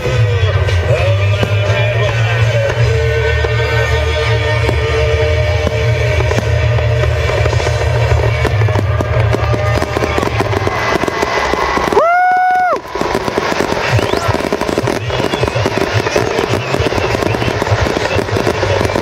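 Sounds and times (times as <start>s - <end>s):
music: 0.0s - 12.0s, 12.8s - 19.0s
fireworks bursting: 0.0s - 19.0s.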